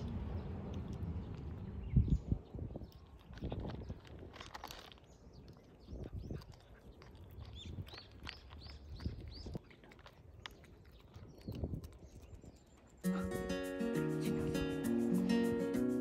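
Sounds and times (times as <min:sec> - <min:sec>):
cat crunching dry food: 0:03.0 - 0:12.3.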